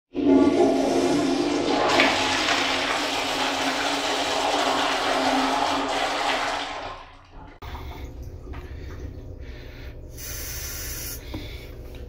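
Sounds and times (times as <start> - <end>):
toilet flushing: 0.1 - 11.1.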